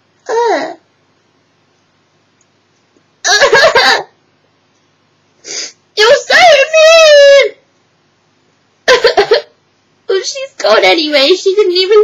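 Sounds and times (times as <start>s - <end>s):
woman crying: 3.3s - 4.1s.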